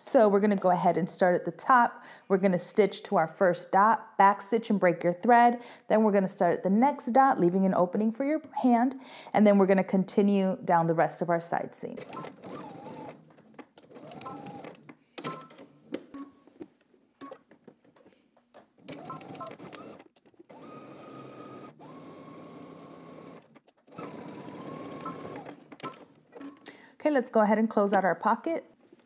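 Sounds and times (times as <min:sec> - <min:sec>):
sewing machine motor whine: 0:12.1 - 0:13.2, 0:13.9 - 0:14.8, 0:18.9 - 0:26.5.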